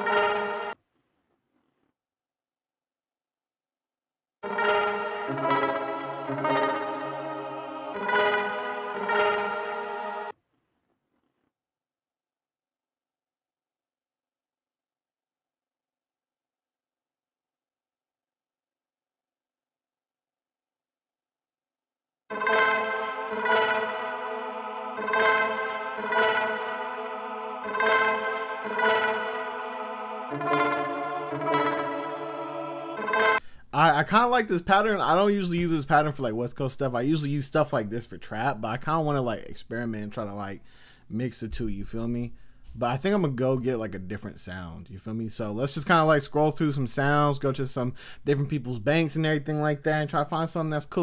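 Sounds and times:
sustained synth chords: 0:00.0 - 0:00.8, 0:04.4 - 0:10.3, 0:22.3 - 0:33.4.

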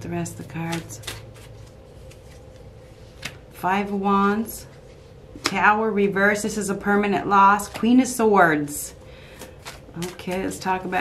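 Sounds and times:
faint room hum: 0:00.0 - 0:11.0
cards rustling and tapping: 0:00.6 - 0:03.4, 0:09.3 - 0:10.9.

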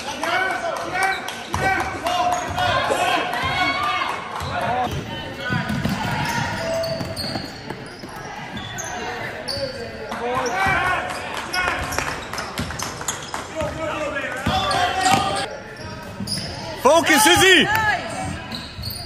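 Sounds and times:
players calling out: 0:13.6 - 0:19.0.

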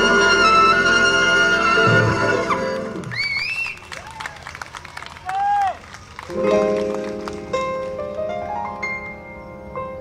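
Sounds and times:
audience clapping: 0:02.7 - 0:08.3.

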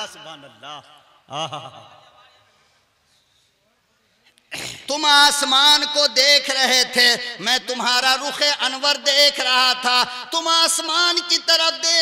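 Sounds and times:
man speaking loudly: 0:00.0 - 0:02.3, 0:04.6 - 0:12.0
breath into microphone: 0:02.4 - 0:03.6.

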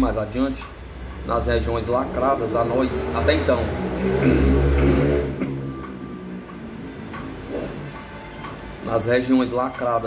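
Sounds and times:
man talking: 0:00.0 - 0:04.3.

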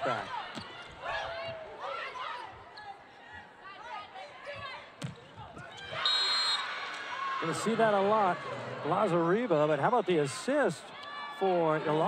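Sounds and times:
referee's whistle: 0:06.0 - 0:06.8.

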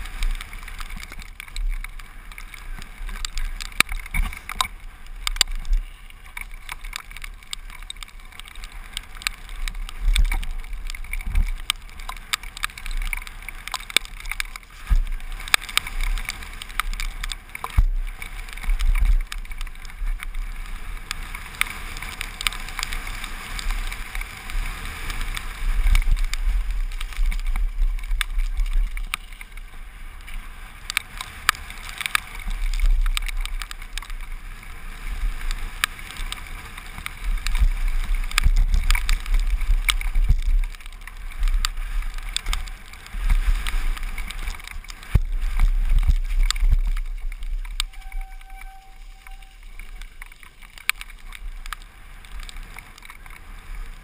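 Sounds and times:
bike rattling and knocking: 0:00.0 - 0:54.0
tyres crunching over stones: 0:00.0 - 0:54.0
wind on microphone: 0:00.0 - 0:54.0.

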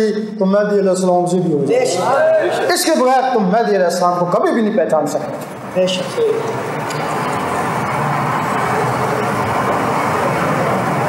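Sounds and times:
audience murmuring: 0:01.6 - 0:02.9, 0:05.3 - 0:11.0.

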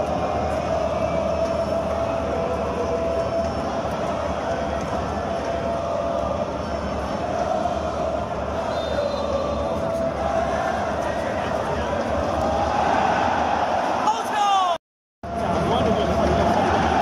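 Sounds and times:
football crowd chanting: 0:00.0 - 0:14.2, 0:15.3 - 0:17.0.

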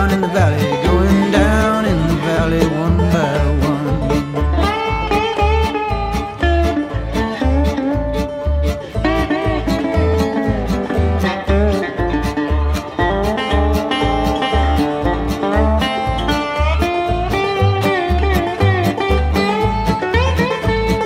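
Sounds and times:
acoustic string band playing: 0:00.0 - 0:21.0.

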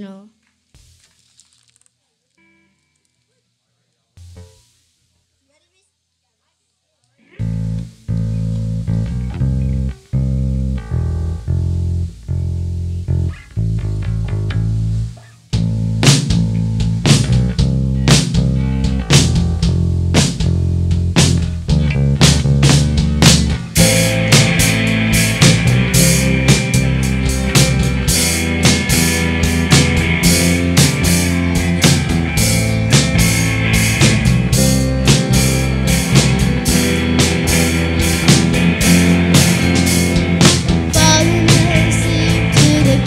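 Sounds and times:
drum kit with cymbals: 0:00.0 - 0:01.3, 0:04.1 - 0:05.9, 0:13.6 - 0:43.0
electric guitars rock riff: 0:07.3 - 0:43.0.

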